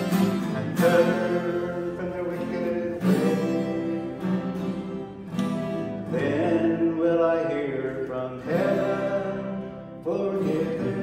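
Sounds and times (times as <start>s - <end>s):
man singing: 0.0s - 4.6s, 6.0s - 11.0s
acoustic guitar strumming: 0.0s - 11.0s.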